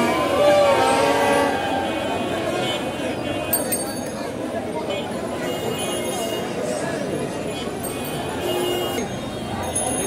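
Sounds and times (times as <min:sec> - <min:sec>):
street crowd chatter: 0:00.0 - 0:10.0.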